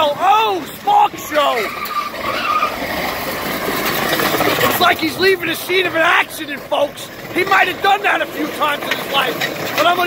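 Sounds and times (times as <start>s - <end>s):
car engine running: 0.0s - 10.0s
wheel rim scraping on pavement: 0.2s - 10.0s.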